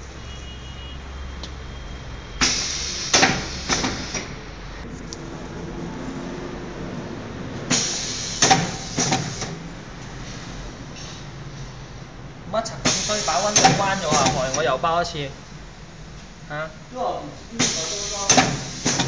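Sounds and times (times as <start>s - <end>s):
wrapping machine rushing hiss: 2.4s - 4.5s, 7.7s - 9.6s, 12.8s - 14.6s, 17.6s - 19.0s.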